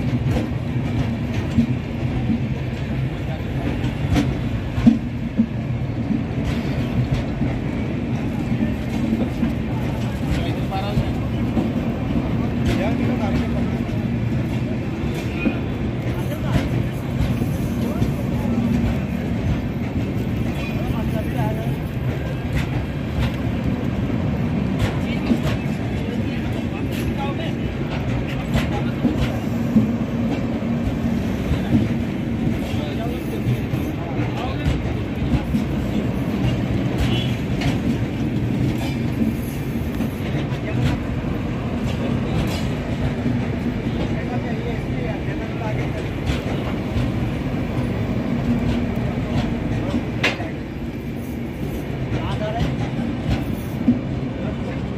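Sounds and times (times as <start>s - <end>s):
wheels clacking over rail joints: 0.0s - 50.6s
train wheels rumbling on rails: 0.0s - 54.9s.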